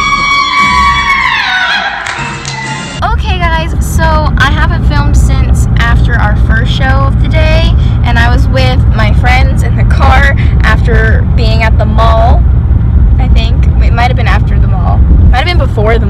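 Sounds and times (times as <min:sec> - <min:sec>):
girl talking: 0:03.0 - 0:12.4, 0:13.2 - 0:16.0
car cabin road rumble: 0:03.0 - 0:16.0.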